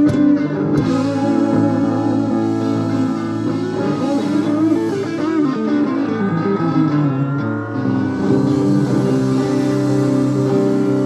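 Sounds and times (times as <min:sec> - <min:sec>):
bass and drums: 0:00.0 - 0:11.0
electric guitar lines: 0:00.0 - 0:11.0.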